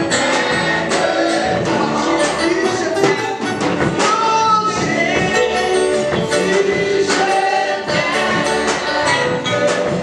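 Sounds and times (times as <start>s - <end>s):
choir singing gospel song: 0.0s - 10.0s
instrumental accompaniment: 0.0s - 10.0s
tambourine-like percussion: 0.0s - 10.0s.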